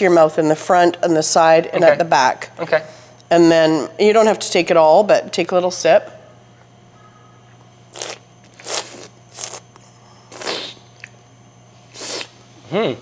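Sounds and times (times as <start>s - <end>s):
person slurping oil: 7.9s - 9.6s, 10.3s - 10.8s.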